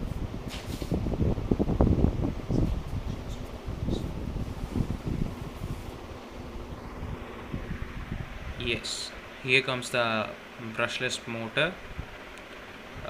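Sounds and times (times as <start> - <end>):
faint room hum: 0.0 - 13.0.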